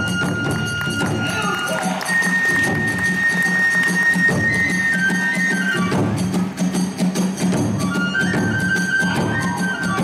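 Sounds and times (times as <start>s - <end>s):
drums beating: 0.0s - 10.0s
flute long high notes: 7.8s - 10.0s.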